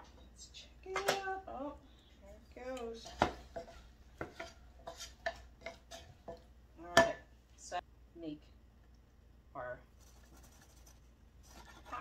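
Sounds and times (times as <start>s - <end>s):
wooden spoon scraping a saucepan: 2.0s - 6.5s, 10.0s - 12.0s.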